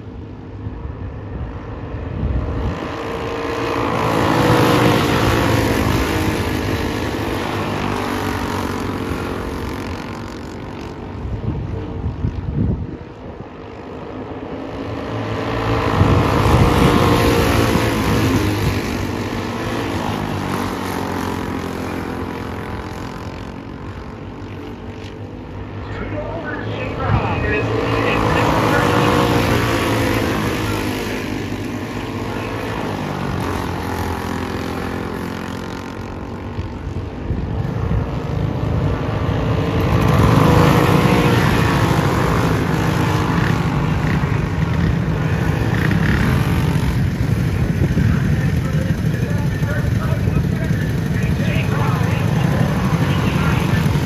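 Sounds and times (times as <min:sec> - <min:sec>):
go-kart engines racing: 0:00.0 - 0:54.0.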